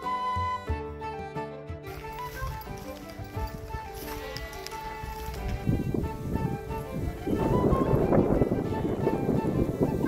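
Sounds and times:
instrumental background music: 0.0s - 10.0s
outdoor ambience: 1.9s - 8.0s.

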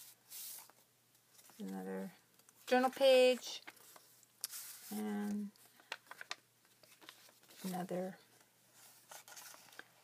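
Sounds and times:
paper pages rustling: 0.0s - 1.8s, 2.4s - 10.0s.

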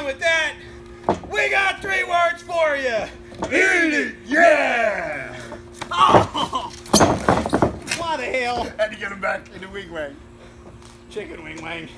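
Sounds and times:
man calling out: 1.3s - 6.7s
knocking: 6.0s - 7.9s.

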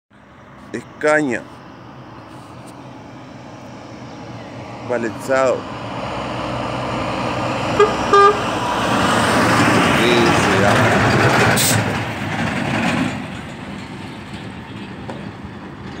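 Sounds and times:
truck engine and tyre noise: 0.1s - 16.0s
truck horn toots: 7.7s - 8.6s.

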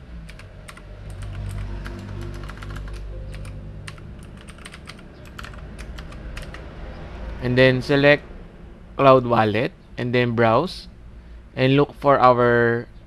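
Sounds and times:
low hum: 0.0s - 13.0s
keyboard keys clicking: 0.3s - 6.6s.

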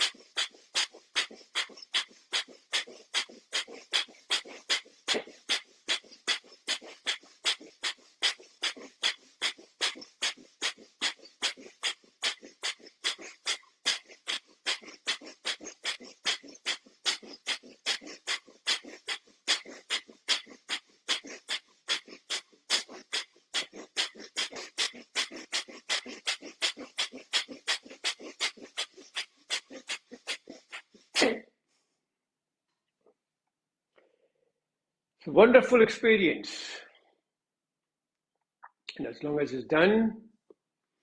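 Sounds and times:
man breathing forcefully through nose: 0.0s - 31.2s.

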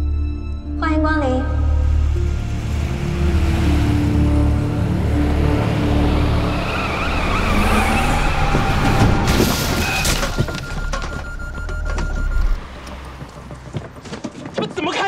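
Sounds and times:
dramatic music: 0.0s - 14.0s
car engine and road rumble: 1.5s - 14.6s
tyres squealing: 5.8s - 15.0s
car crashing into boxes: 8.4s - 11.1s.

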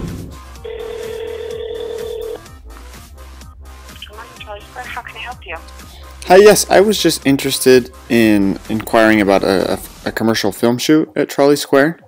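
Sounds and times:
background music with a beat: 0.0s - 10.6s
telephone ringback tone: 0.6s - 2.4s.

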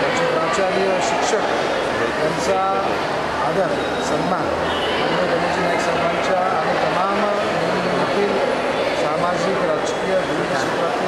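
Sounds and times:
background chatter of voices: 0.0s - 11.0s
man talking: 0.0s - 11.0s.

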